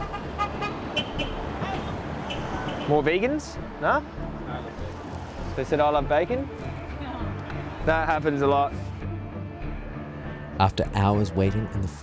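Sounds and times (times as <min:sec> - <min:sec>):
road traffic rumble: 0:00.0 - 0:10.6.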